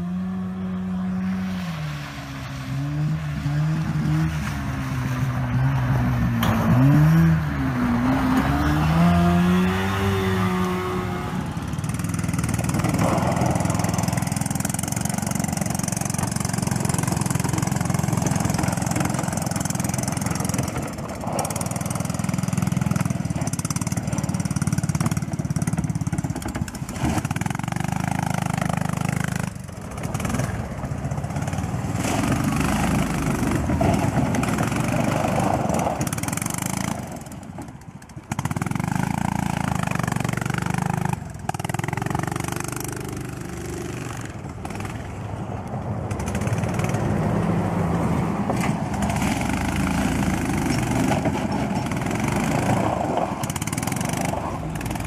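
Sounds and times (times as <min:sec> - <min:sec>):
small engines revving: 0:02.6 - 0:45.3, 0:46.1 - 0:55.0.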